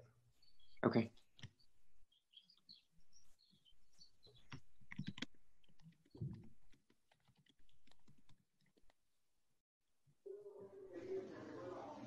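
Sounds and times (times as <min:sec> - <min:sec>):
faint keyboard typing: 0:01.2 - 0:02.0, 0:03.9 - 0:09.0.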